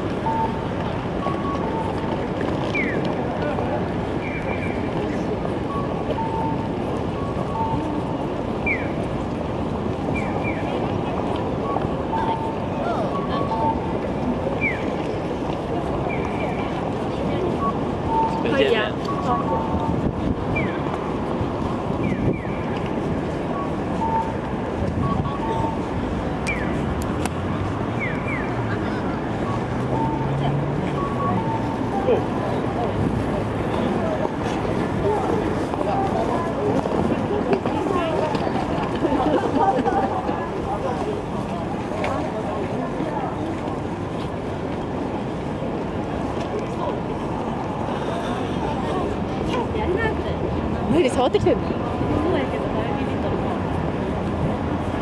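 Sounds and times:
crossing signal beeps: 0:00.0 - 0:41.3
city traffic: 0:00.0 - 0:55.0
crowd on foot: 0:00.0 - 0:55.0
people walking: 0:00.0 - 0:55.0.

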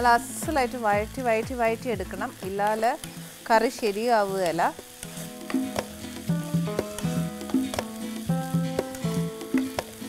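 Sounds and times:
onions frying: 0:00.0 - 0:10.0
instrumental music: 0:04.8 - 0:10.0
spatula scraping pan: 0:04.9 - 0:07.8.

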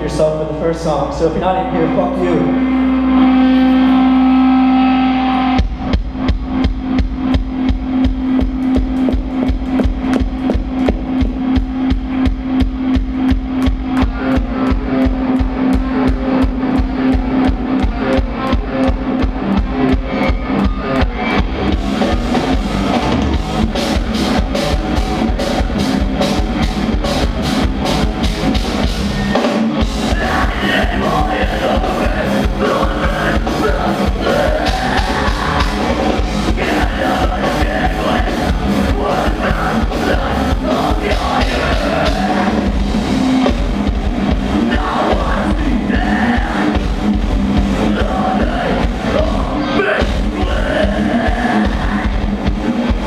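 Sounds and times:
heavy guitars and bass: 0:00.0 - 0:53.0
fast kick-drum beat: 0:05.6 - 0:29.1, 0:29.7 - 0:53.0.

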